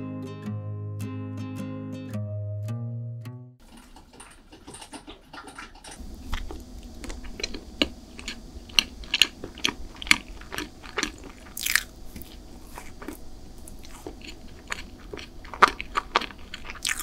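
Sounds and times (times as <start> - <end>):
close chewing: 3.6 - 17.0.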